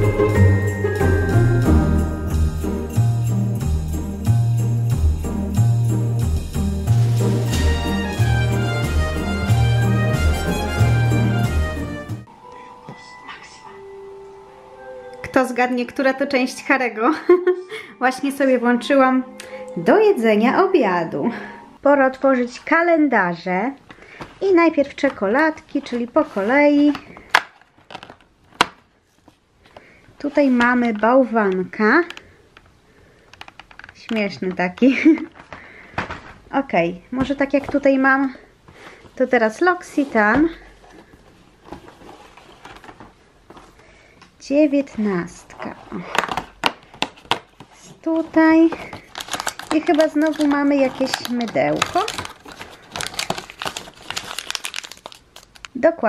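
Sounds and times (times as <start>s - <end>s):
paper and cardboard crinkling: 23.9s - 31.2s, 39.8s - 43.9s, 45.0s - 55.9s.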